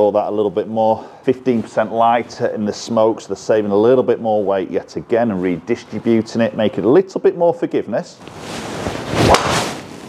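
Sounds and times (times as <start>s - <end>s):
golf club swishing: 8.2s - 10.0s.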